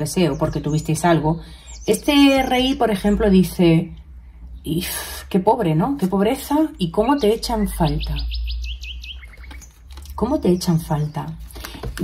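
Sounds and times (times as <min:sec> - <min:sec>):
small bird chirping: 0:00.0 - 0:03.4, 0:06.7 - 0:12.0
low steady hum: 0:00.0 - 0:12.0.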